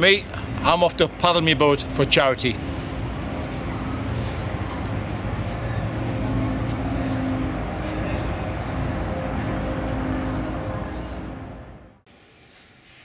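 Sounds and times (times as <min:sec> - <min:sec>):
low engine hum: 0:00.0 - 0:12.0
background noise: 0:00.0 - 0:13.0.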